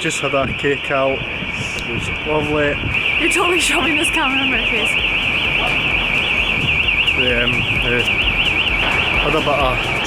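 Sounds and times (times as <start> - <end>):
electronic alarm warbling: 0.0 - 10.0.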